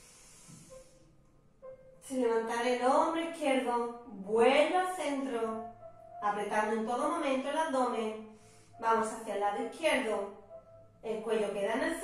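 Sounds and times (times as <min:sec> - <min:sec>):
soft hissing exhale: 0:00.0 - 0:01.0.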